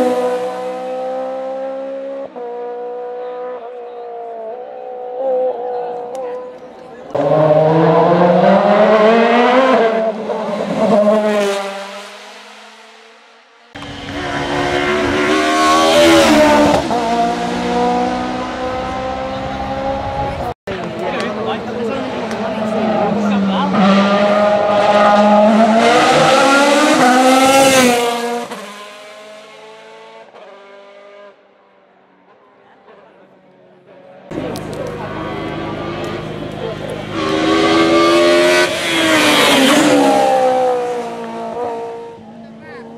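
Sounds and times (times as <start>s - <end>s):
racing car engines at full throttle: 0.0s - 42.9s.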